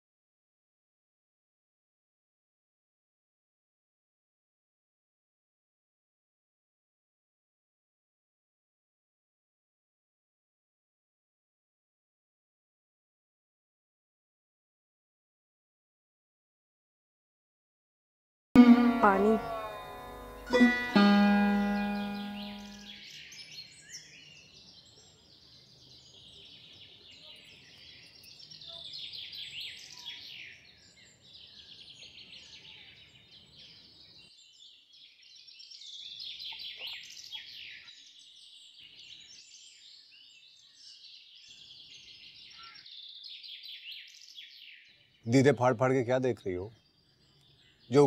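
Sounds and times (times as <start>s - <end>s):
sitar music: 18.6s - 23.0s
small birds chirping: 20.4s - 48.0s.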